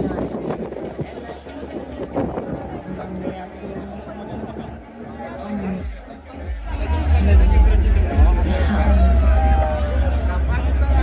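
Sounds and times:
crowd chatting: 0:00.0 - 0:11.0.

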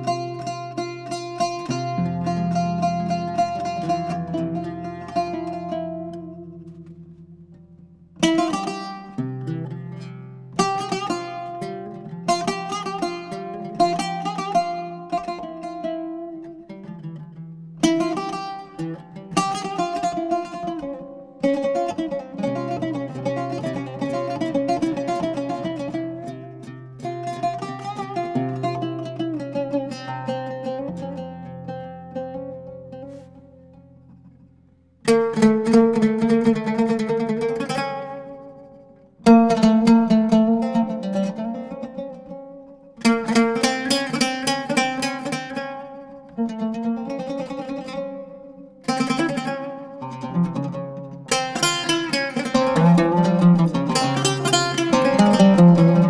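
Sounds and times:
oud duet plucking: 0:00.0 - 0:56.0.

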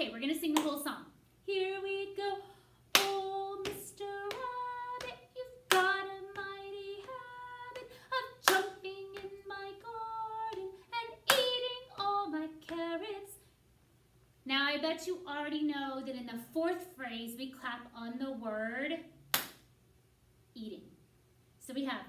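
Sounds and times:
woman singing unaccompanied: 0:00.0 - 0:13.4
hand claps: 0:03.0 - 0:07.2, 0:07.8 - 0:09.4, 0:19.4 - 0:19.6.

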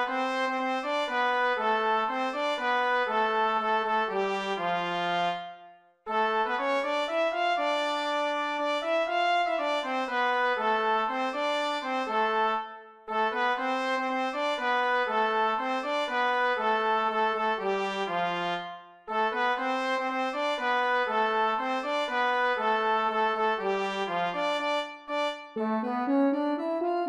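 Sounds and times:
trumpet leading: 0:00.0 - 0:26.7
alto saxophone: 0:00.0 - 0:27.0
brass band melody: 0:00.0 - 0:27.0.

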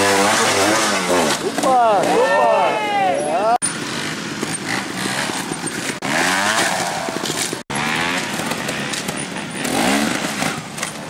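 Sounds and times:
motorcycle engine revving: 0:00.0 - 0:02.1, 0:03.6 - 0:11.0.

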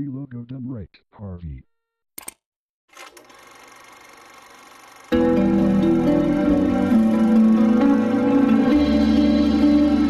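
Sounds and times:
click: 0:02.2 - 0:02.4.

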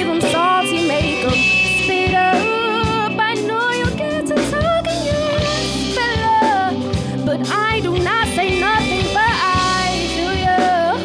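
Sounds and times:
live band playing: 0:00.0 - 0:11.0
woman singing: 0:00.0 - 0:11.0.

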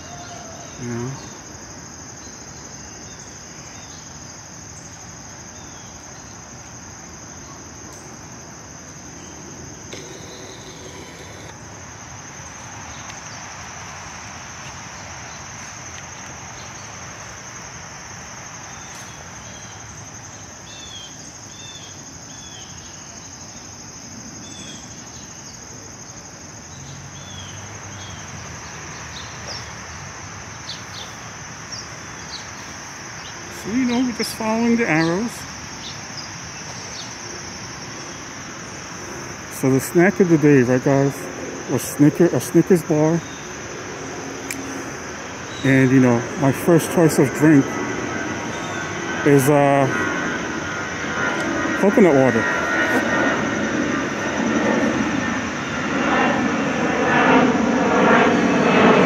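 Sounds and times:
shrill insect chorus: 0:00.0 - 0:59.0.

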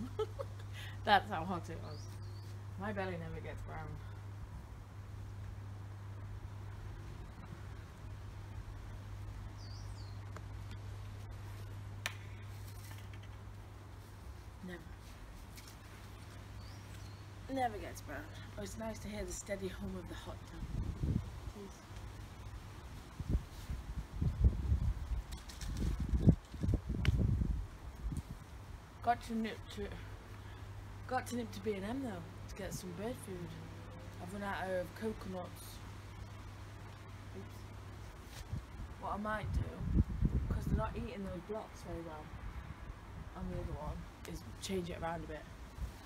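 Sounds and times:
bird chirping: 0:01.8 - 0:02.6, 0:09.4 - 0:10.3, 0:16.5 - 0:17.4
wind buffeting microphone: 0:20.3 - 0:21.7, 0:22.8 - 0:28.7, 0:38.4 - 0:44.2.

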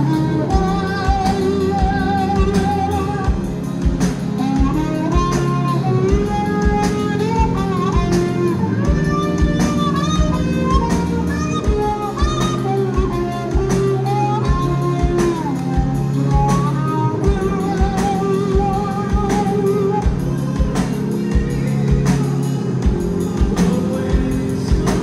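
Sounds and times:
bass: 0:00.0 - 0:25.0
drum kit: 0:00.0 - 0:25.0
electric guitar: 0:00.0 - 0:25.0
gliding lead melody: 0:00.0 - 0:25.0
keyboards: 0:00.0 - 0:25.0.

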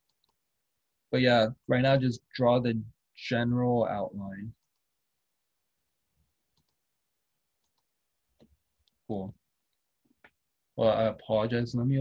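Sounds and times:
faint computer mouse clicks: 0:06.5 - 0:06.8, 0:07.6 - 0:09.0.

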